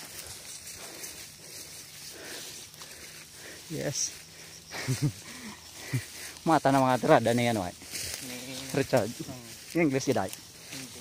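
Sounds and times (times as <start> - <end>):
brush rustling: 0.0 - 11.0
faint footfalls: 0.0 - 11.0.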